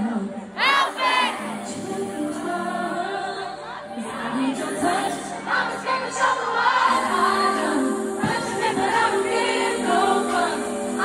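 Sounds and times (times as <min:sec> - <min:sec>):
woman singing a ballad: 0:00.0 - 0:11.0.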